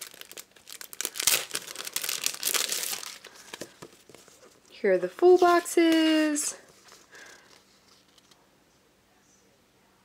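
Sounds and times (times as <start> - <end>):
plastic and paper crinkling: 0.0 - 8.4.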